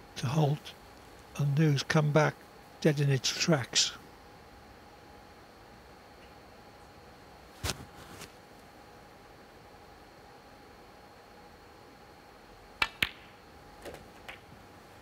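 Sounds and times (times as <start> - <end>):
cue striking ball: 12.8 - 14.4
light ball knocks: 12.8 - 14.4
snooker balls clicking: 12.8 - 14.5.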